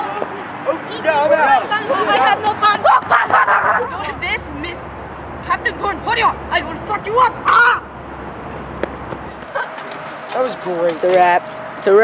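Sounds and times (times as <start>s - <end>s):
person yelling: 5.5s - 7.9s.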